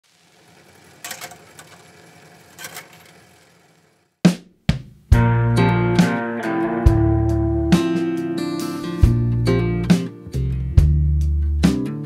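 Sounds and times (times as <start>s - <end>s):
film projector hum and hiss: 0.0s - 4.1s.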